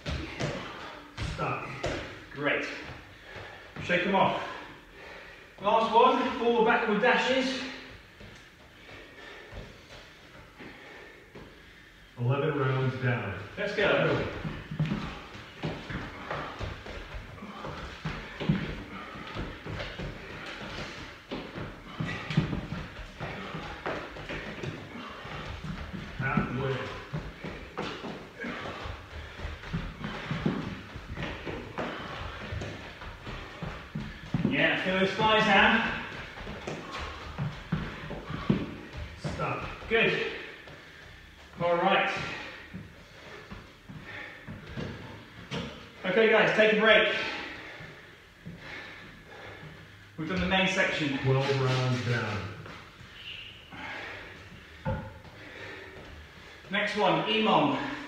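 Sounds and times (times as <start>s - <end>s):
feet thudding on foam mats: 0.0s - 6.4s, 13.6s - 46.0s.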